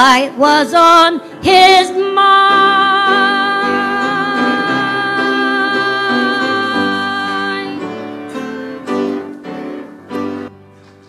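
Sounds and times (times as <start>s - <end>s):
woman singing with vibrato: 0.0s - 8.6s
piano chords: 0.0s - 11.0s.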